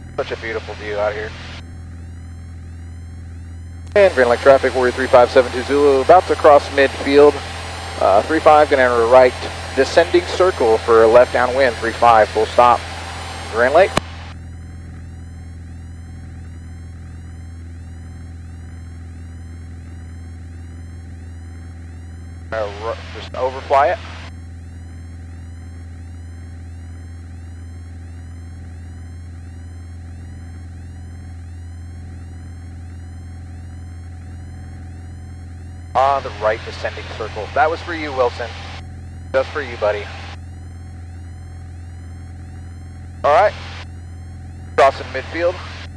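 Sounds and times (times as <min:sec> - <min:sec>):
airplane engine drone: 0:00.0 - 0:45.9
person speaking: 0:03.9 - 0:07.4, 0:08.0 - 0:12.8, 0:13.5 - 0:14.0.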